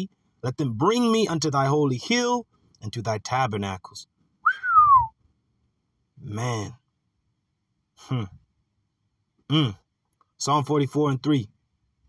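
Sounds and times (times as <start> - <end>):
man whistling: 4.4 - 5.2.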